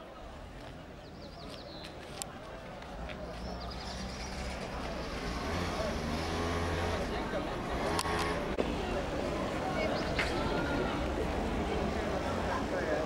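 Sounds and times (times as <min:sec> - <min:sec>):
people talking: 0:00.0 - 0:13.0
vehicle engine humming: 0:02.3 - 0:13.0.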